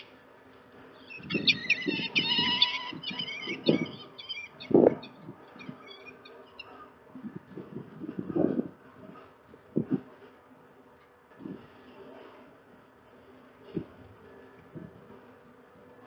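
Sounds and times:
falcon calling harshly: 1.1s - 6.2s.

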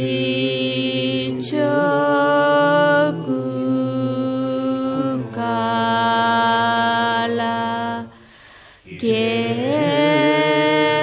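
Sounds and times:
prayer chanting in held notes: 0.0s - 11.0s.

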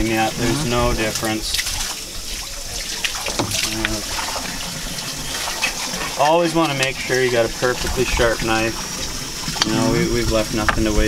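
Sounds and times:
water running from a hose: 0.0s - 11.0s.

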